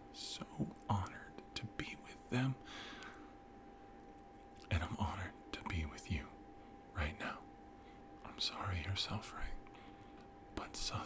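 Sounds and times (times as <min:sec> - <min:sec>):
faint steady hum: 0:00.0 - 0:11.0
man whispering: 0:00.2 - 0:02.7, 0:04.6 - 0:07.6, 0:08.2 - 0:09.7, 0:10.6 - 0:11.0.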